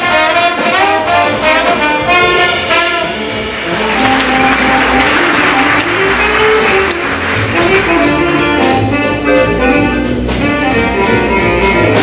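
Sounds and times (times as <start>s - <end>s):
cymbals: 0.0s - 12.0s
jazz big band playing: 0.0s - 12.0s.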